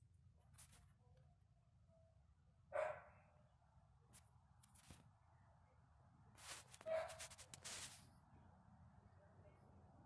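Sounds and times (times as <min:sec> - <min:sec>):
dog barking: 0:02.7 - 0:03.3, 0:06.8 - 0:07.2.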